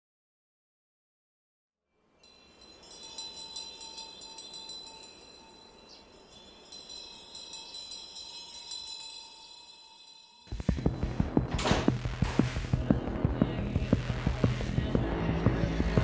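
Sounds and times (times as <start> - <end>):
chimes ringing softly: 2.1 - 10.5
steady lower tone: 10.5 - 16.0.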